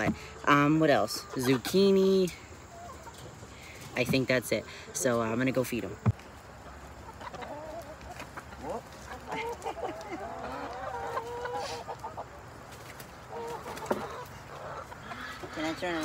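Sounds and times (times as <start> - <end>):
hens clucking: 0.0 - 16.0.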